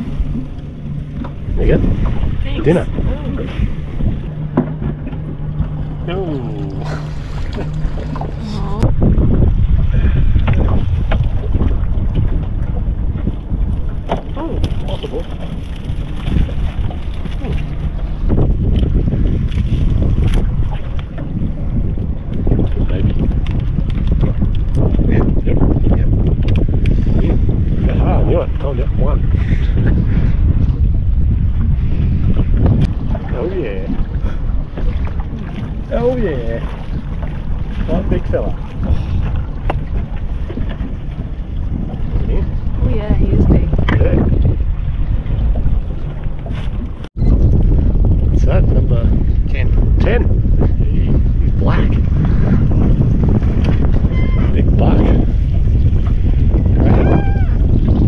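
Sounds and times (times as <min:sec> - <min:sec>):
wind buffeting microphone: 0:00.0 - 0:58.0.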